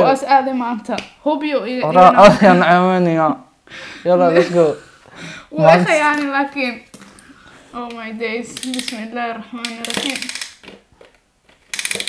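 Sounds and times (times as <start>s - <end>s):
plastic ratchet clicks: 8.6s - 9.0s, 9.6s - 12.0s.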